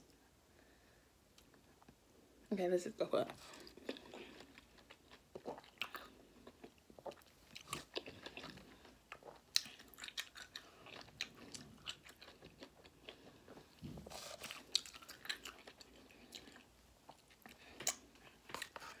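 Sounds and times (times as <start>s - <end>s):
person chewing: 3.4s - 19.0s.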